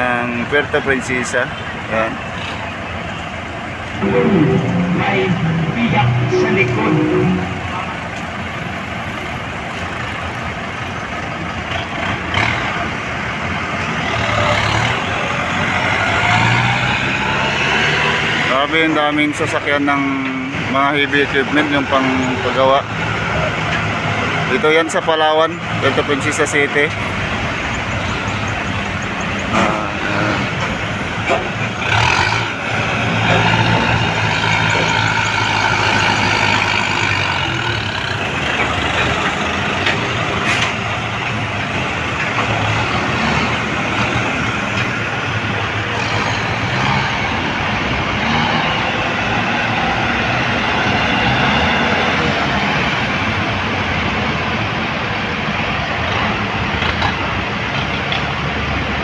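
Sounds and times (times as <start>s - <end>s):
road noise: 0.0s - 59.0s
tractor diesel engines running: 0.0s - 59.0s.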